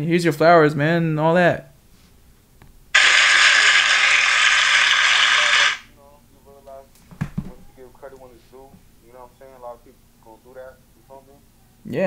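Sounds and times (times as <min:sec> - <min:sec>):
faint voices: 0:03.0 - 0:05.8
harsh hiss-like noise burst: 0:03.0 - 0:05.9.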